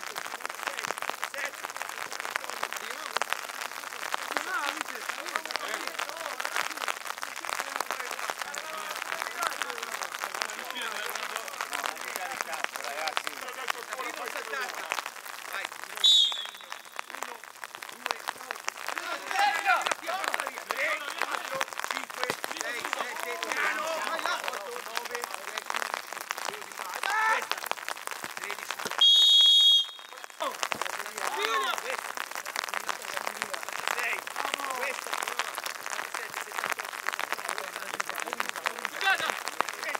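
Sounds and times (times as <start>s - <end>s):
players shouting: 4.2s - 27.7s, 28.4s - 35.5s, 37.6s - 39.9s
whistle blast: 16.0s - 17.1s, 29.0s - 30.4s
men calling out: 17.8s - 25.7s, 26.4s - 27.7s, 30.0s - 32.1s.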